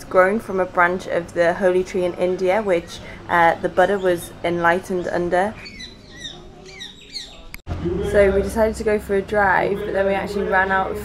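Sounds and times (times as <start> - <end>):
birds chirping: 2.9 - 8.6.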